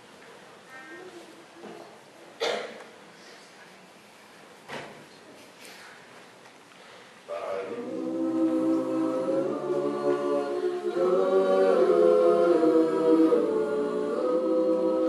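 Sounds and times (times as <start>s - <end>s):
a cappella group singing in harmony: 7.4s - 15.0s.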